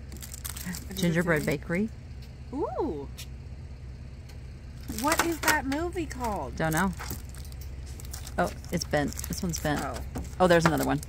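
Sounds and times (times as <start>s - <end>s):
engine humming: 0.0s - 11.0s.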